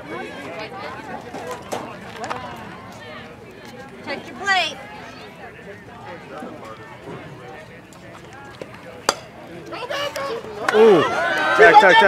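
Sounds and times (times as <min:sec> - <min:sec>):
spectators' voices: 0:00.0 - 0:12.0
bat cracking ball: 0:09.0 - 0:09.4.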